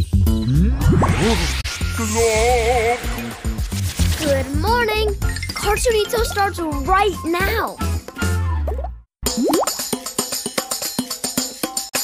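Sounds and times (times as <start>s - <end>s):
jingle music: 4.6s - 8.0s
bouncy tune with percussion: 4.6s - 12.0s.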